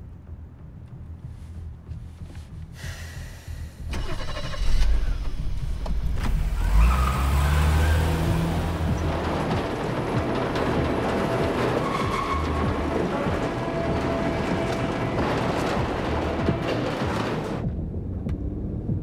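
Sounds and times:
film score music: 0:00.0 - 0:19.0
vehicle engine rumble: 0:00.0 - 0:19.0.

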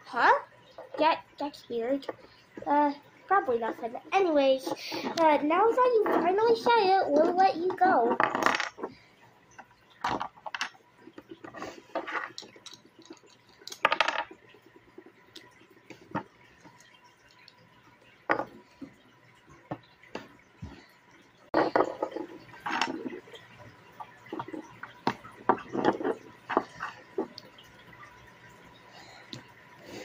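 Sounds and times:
plastic bricks clicking together: 0:08.1 - 0:08.9, 0:10.0 - 0:14.4.

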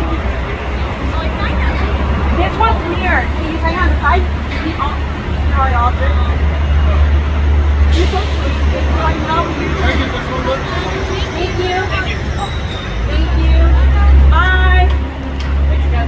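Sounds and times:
curbside traffic: 0:00.0 - 0:16.0
indistinct talking: 0:00.0 - 0:16.0
vehicle engine idling: 0:00.0 - 0:16.0.

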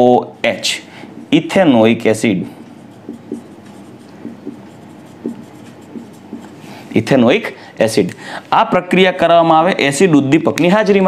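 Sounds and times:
marker pen on whiteboard: 0:01.0 - 0:07.3.

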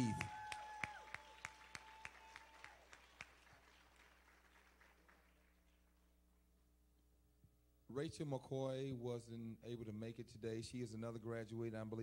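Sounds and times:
audience applause: 0:00.0 - 0:05.5.

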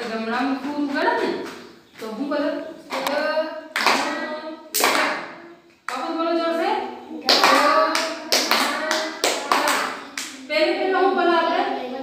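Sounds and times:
woman and children's voices: 0:06.0 - 0:12.0
hands clapping: 0:07.2 - 0:10.4.

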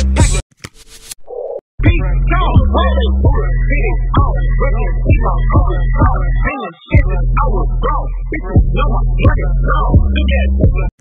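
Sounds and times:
hip hop track with heavy bass: 0:00.0 - 0:00.4, 0:01.8 - 0:11.0
rapped vocals: 0:00.0 - 0:00.4, 0:01.2 - 0:11.0.

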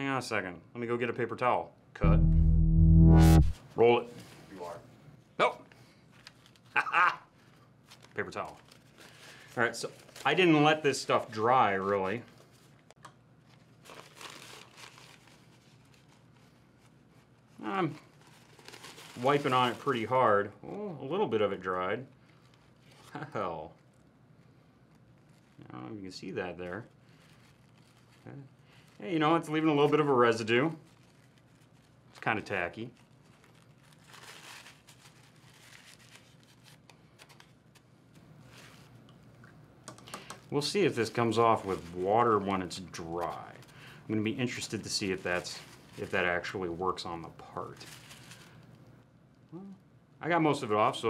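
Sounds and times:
paper towel rustling: 0:07.4 - 0:20.5, 0:21.3 - 0:39.0, 0:40.5 - 0:48.8.

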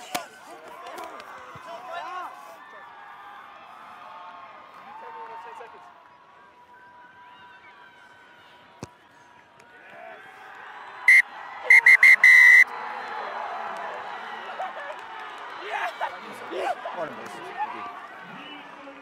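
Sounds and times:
crowd cheering: 0:00.0 - 0:19.0
referee's whistle blasts: 0:11.1 - 0:12.7.

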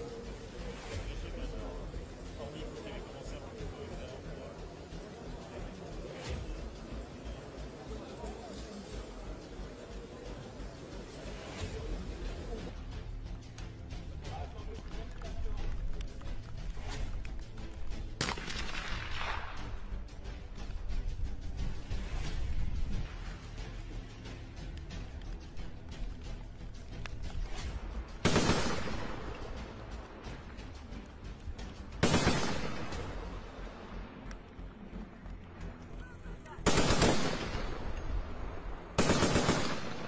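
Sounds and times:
gunshot with long echo: 0:18.2 - 0:19.7, 0:28.2 - 0:29.4, 0:32.0 - 0:33.2, 0:36.7 - 0:37.9, 0:39.0 - 0:40.0
machine gun bursts: 0:36.7 - 0:37.4, 0:39.0 - 0:39.8.

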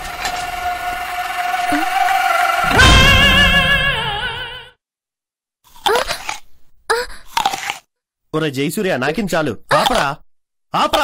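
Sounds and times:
person wailing: 0:00.8 - 0:04.7.

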